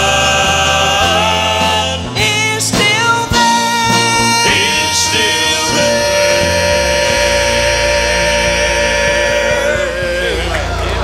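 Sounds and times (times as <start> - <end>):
gospel singers sustaining a note: 0.0 - 11.0
instrumental accompaniment: 0.0 - 11.0.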